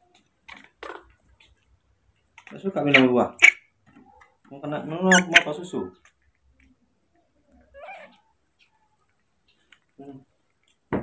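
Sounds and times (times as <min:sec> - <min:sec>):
baby monkey call: 0:05.1 - 0:05.6, 0:07.8 - 0:08.3.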